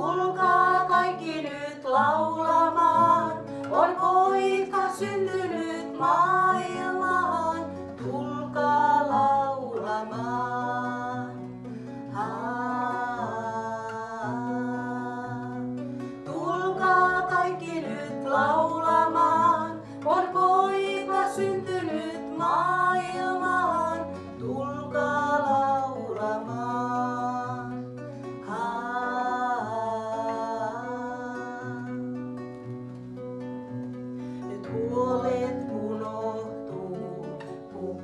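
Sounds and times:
women singing: 0:00.0 - 0:32.5, 0:34.4 - 0:38.0
acoustic guitar: 0:00.0 - 0:38.0.

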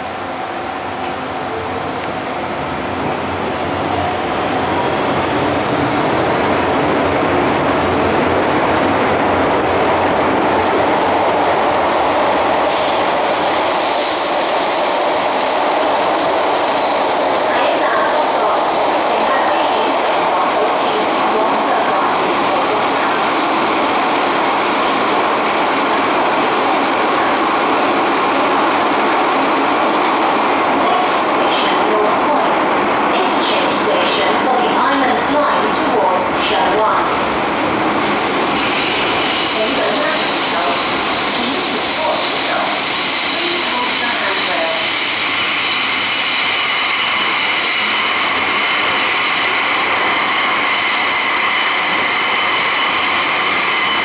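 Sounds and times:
metro train running in tunnel: 0:00.0 - 0:54.0
high wheel squeal: 0:37.1 - 0:54.0.

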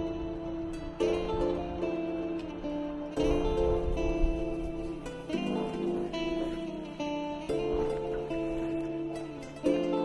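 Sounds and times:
acoustic guitar picking notes: 0:00.0 - 0:10.0.

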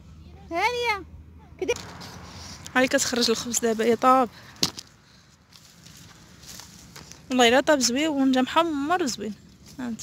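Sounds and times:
faint outdoor hiss: 0:00.0 - 0:10.0.

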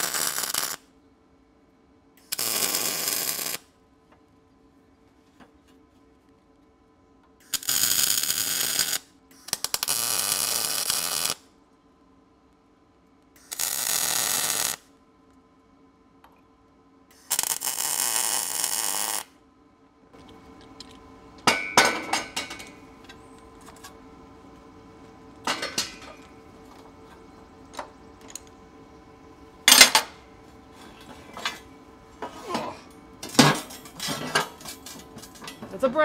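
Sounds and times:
welder sizzling hiss: 0:00.0 - 0:00.8, 0:02.2 - 0:03.7, 0:07.4 - 0:11.4, 0:13.4 - 0:14.8, 0:17.1 - 0:19.3
metal clanks and clinks: 0:21.4 - 0:22.8, 0:25.4 - 0:26.3.

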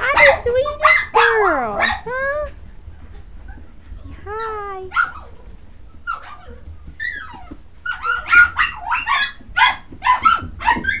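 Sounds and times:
puppies whining and yipping: 0:00.0 - 0:11.0.

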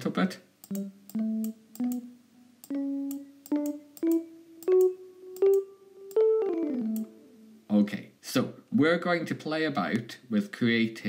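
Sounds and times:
electric piano notes: 0:02.7 - 0:07.4.

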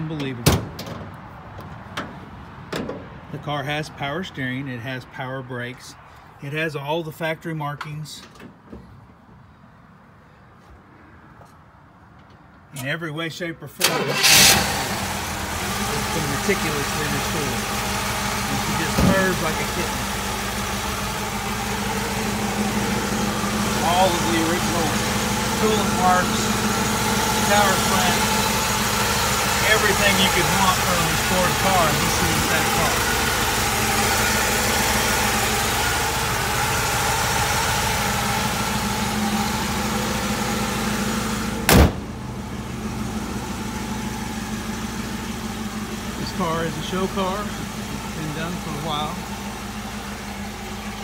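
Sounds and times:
car hood slamming shut: 0:00.4 - 0:01.1, 0:41.7 - 0:42.1
car engine idling: 0:13.9 - 0:51.0.

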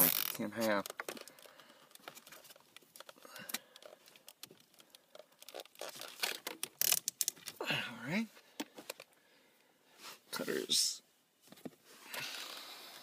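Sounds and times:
cable handling clicks and rustling: 0:00.0 - 0:07.6, 0:08.5 - 0:09.2.

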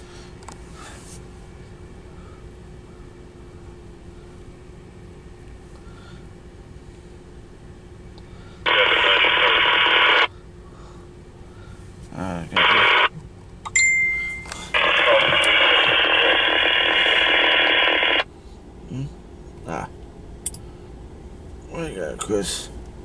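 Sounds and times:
voice chatter from two-way radio: 0:08.7 - 0:10.3, 0:12.2 - 0:13.2, 0:14.7 - 0:18.2
short beep tone: 0:13.7 - 0:14.7.

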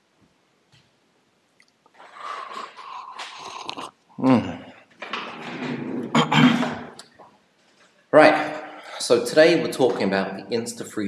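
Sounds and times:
person slurping a drink: 0:02.0 - 0:04.5
small wet mouth clicks: 0:02.4 - 0:04.0.

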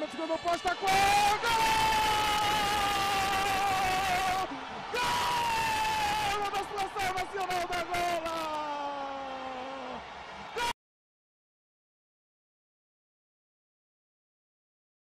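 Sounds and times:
commentator shouting goal: 0:00.0 - 0:10.7.

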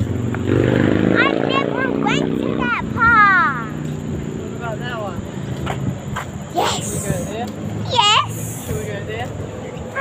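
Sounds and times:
child squealing: 0:06.6 - 0:07.2, 0:07.9 - 0:08.7.

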